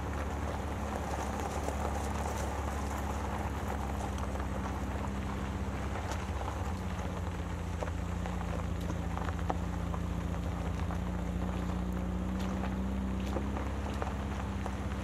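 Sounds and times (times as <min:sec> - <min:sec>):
gravel crackling under tyres: 0:00.0 - 0:15.0
van engine drone: 0:00.0 - 0:15.0.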